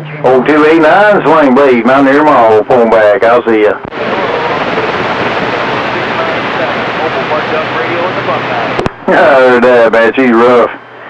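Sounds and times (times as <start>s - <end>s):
faint voices in static: 0.0s - 11.0s
radio static: 0.2s - 10.8s.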